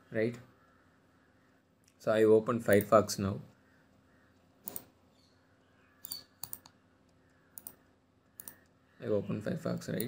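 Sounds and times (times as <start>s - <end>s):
computer mouse clicks: 4.6s - 4.9s, 6.0s - 7.8s, 8.4s - 8.8s.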